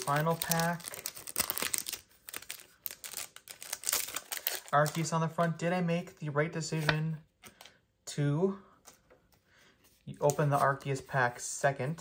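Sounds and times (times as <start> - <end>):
foil wrapper crinkling and tearing: 0.0 - 5.1.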